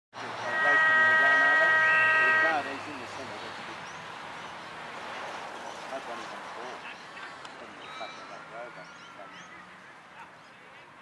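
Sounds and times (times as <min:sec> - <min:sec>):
horn blast: 0:00.4 - 0:02.8.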